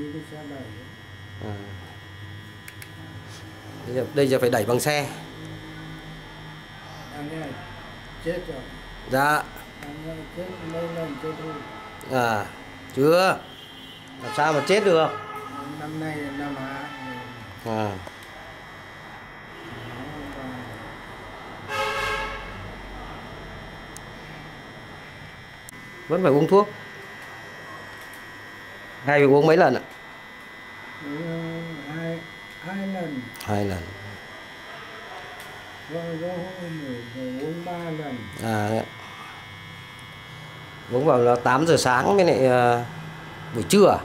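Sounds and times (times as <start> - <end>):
electrical hum: 0.0 - 44.0
vehicle horn blast: 10.4 - 12.4, 13.4 - 17.5, 19.5 - 20.1, 21.6 - 22.8.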